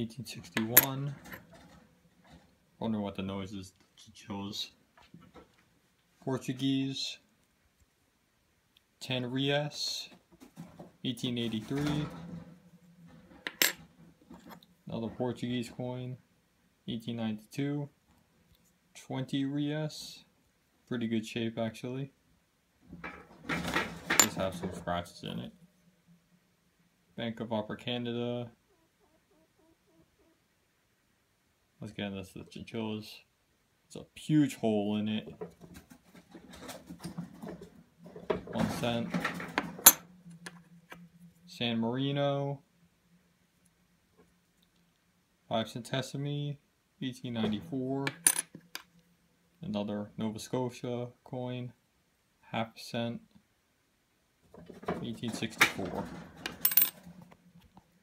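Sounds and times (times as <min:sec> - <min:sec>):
faint low hum: 0:23.8 - 0:58.0
metal coins clinking: 0:56.6 - 0:57.0.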